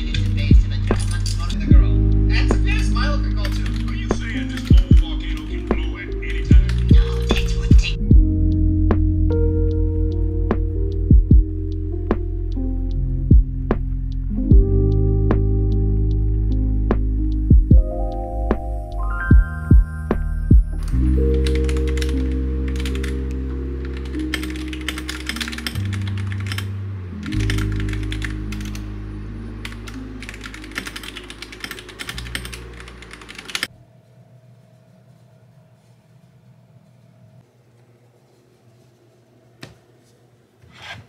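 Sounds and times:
soft background music: 0.0s - 36.3s
mechanical keyboard typing: 3.4s - 5.6s, 20.8s - 28.9s, 29.6s - 33.7s.

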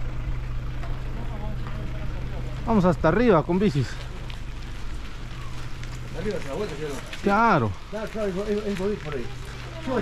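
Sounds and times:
bicycle rolling over dirt: 0.0s - 10.0s.

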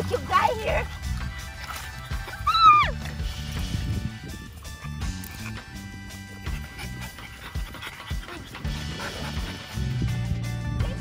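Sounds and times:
dog panting: 0.0s - 2.5s, 4.7s - 11.0s
music with low bass line: 0.0s - 11.0s.

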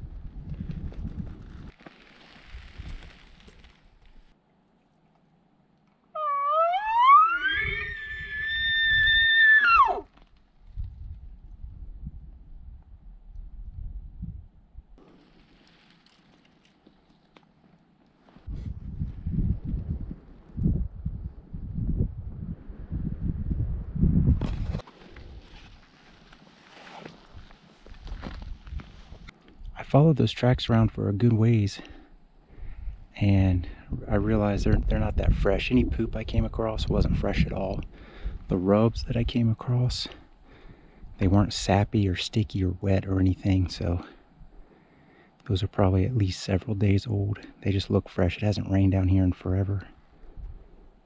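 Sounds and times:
rising bugle whistle: 6.2s - 10.0s.

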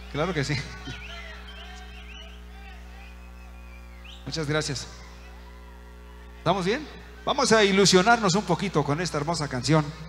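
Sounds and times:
sound system hum: 0.0s - 10.0s.

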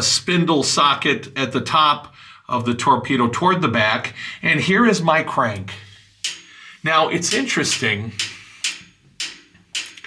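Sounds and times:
crank metallic clicks: 7.2s - 10.0s.

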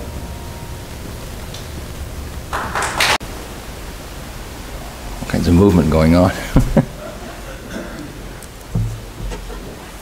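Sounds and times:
room tone hiss: 0.0s - 10.0s
man speaking: 5.2s - 6.6s.

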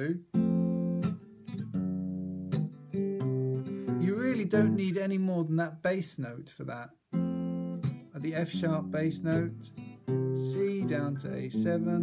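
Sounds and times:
acoustic guitar chords: 0.0s - 6.2s, 6.9s - 12.0s.

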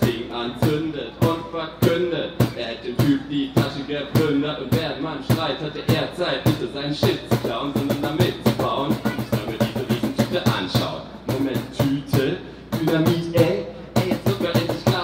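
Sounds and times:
fast cajon beat: 0.0s - 15.0s
man rapping: 0.0s - 15.0s.

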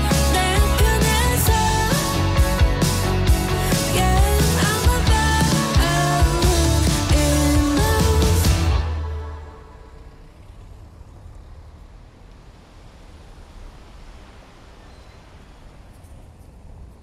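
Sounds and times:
music: 0.0s - 9.8s
faint low rumble: 3.4s - 17.0s.

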